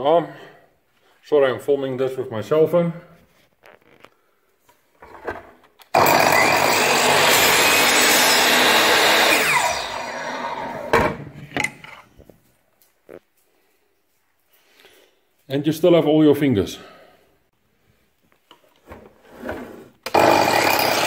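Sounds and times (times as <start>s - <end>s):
miter saw cutting wood: 6.0s - 10.9s, 20.1s - 21.0s.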